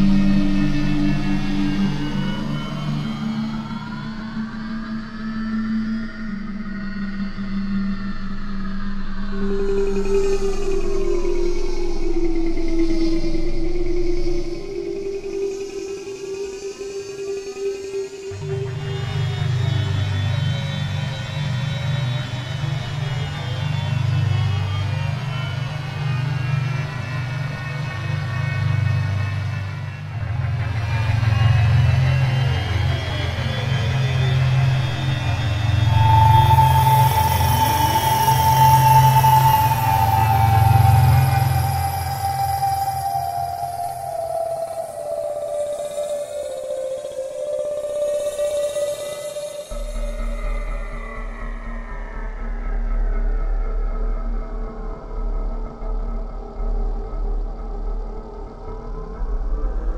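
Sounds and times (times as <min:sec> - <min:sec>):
low synthesizer drone with glides: 0:00.0 - 0:59.9.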